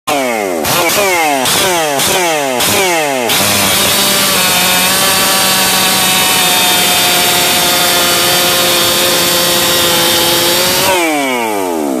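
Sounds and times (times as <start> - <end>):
chainsaw cutting through log: 0.1 - 12.0.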